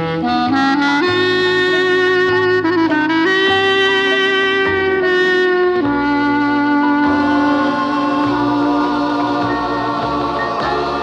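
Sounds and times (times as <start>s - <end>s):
instrumental christmas music: 0.0s - 11.0s.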